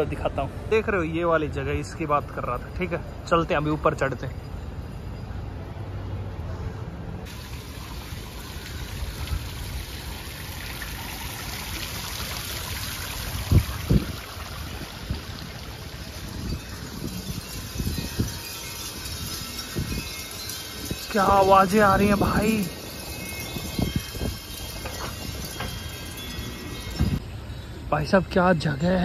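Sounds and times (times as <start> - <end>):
wind chimes tinkling: 0.0 - 29.0.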